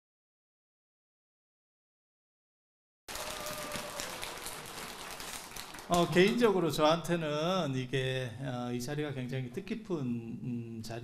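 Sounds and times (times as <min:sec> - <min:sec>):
audience rustling in a hall: 0:03.1 - 0:06.8.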